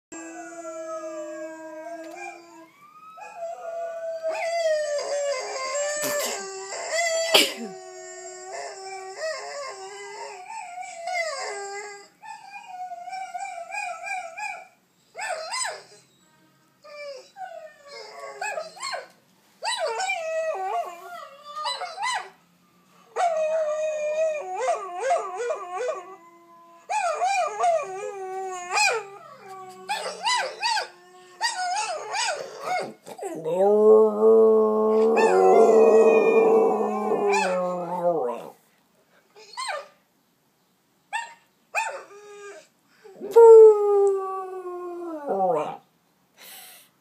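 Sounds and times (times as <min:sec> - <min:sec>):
dog howling: 0:26.9 - 0:38.6, 0:42.4 - 0:45.8.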